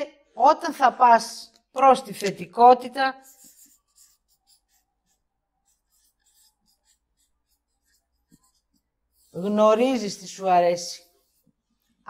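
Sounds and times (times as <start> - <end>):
marker scratching on paper: 3.1 - 12.0.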